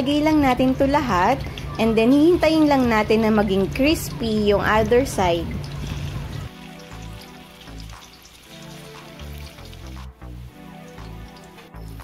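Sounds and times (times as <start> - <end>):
instrumental background music: 0.0 - 12.0
tofu sizzling in oil: 5.3 - 12.0.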